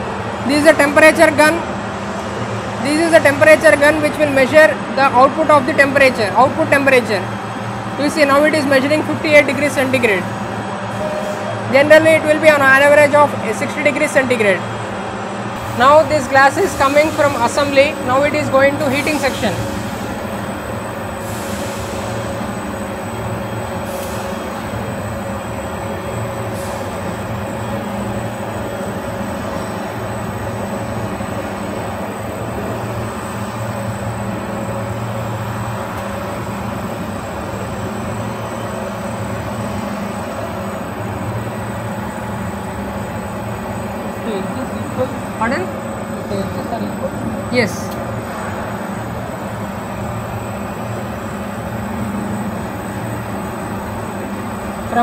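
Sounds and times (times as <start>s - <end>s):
roller conveyor rolling hum: 0.0s - 55.0s.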